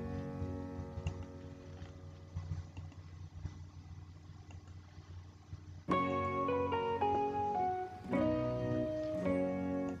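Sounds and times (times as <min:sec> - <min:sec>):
faint music: 0:00.0 - 0:10.0
low steady hum: 0:00.0 - 0:10.0.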